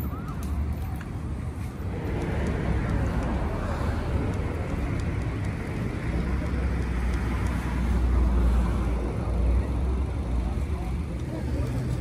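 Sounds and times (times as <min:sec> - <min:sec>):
cars driving past: 0:00.0 - 0:12.0
low vehicle rumble: 0:00.0 - 0:12.0.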